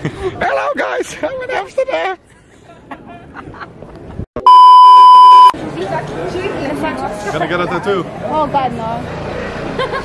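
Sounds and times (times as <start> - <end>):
voices and street chatter: 0.0 - 4.0, 5.4 - 10.0
censor bleep tone: 4.4 - 5.5.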